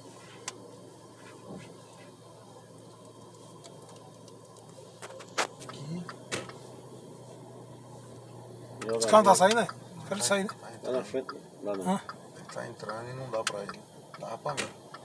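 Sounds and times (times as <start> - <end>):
car engine and tyres hum: 0.0 - 15.0.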